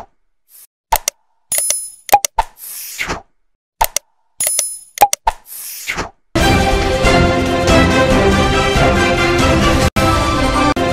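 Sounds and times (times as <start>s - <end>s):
sharp mouse clicks: 0.6s - 3.2s, 3.8s - 6.1s.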